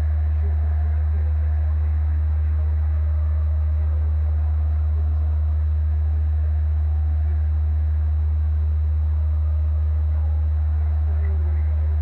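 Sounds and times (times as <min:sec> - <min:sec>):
faint audience murmur: 0:00.0 - 0:12.0
low electrical hum: 0:00.0 - 0:12.0.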